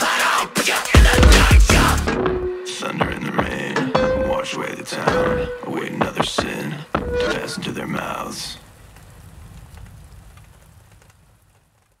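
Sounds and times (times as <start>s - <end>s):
rain falling: 5.8s - 12.0s.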